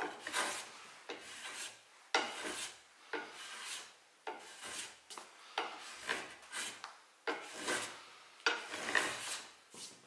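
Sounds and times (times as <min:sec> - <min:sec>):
block plane shaving wood: 0:00.0 - 0:02.7, 0:03.3 - 0:05.0, 0:06.0 - 0:08.0, 0:08.6 - 0:09.5.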